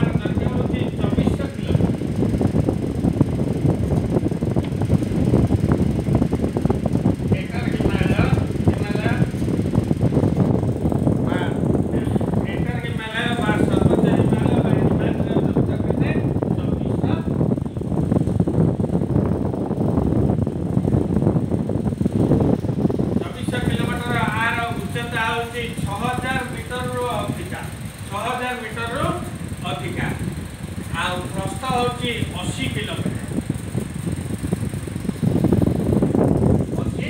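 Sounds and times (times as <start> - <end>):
low crackly rumbling: 0.0 - 37.0
wind buffeting microphone: 0.0 - 37.0.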